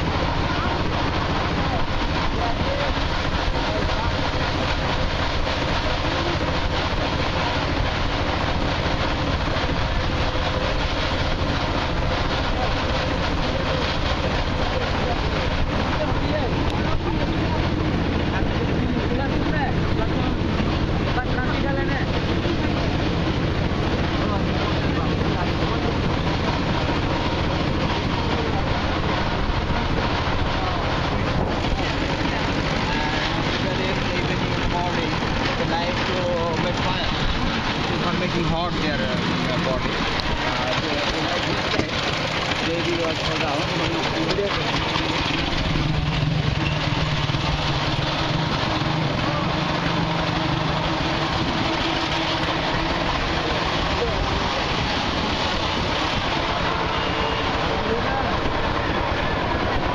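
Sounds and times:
low rumble: 0.0s - 57.0s
people's voices: 0.0s - 59.9s.

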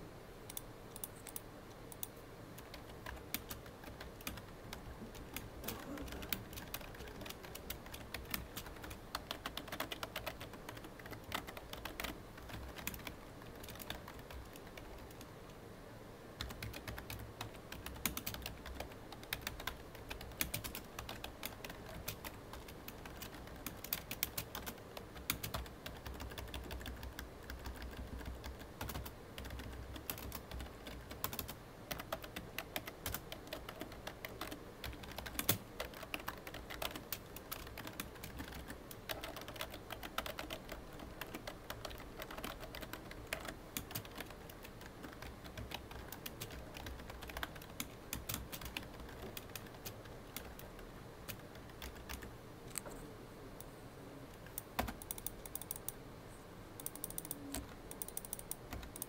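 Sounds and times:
typing on computer keyboard: 0.5s - 15.3s, 16.4s - 52.3s, 54.4s - 56.0s, 56.8s - 59.0s.

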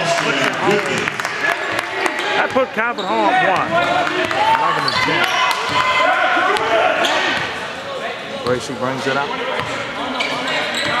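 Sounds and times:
spectators talking: 0.0s - 11.0s.

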